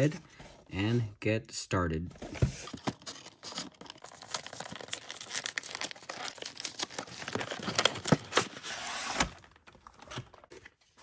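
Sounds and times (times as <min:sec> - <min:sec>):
packaging crinkling and tearing: 0:02.6 - 0:10.8.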